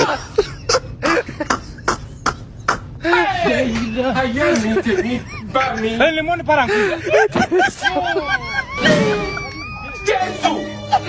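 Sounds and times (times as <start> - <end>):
person coughing or stifled laughing: 0.0 - 2.9.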